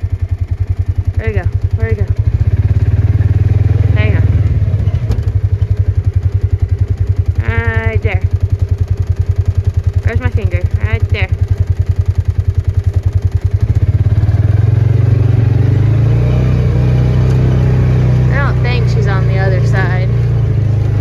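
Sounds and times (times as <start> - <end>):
vehicle engine throbbing: 0.0 - 21.0.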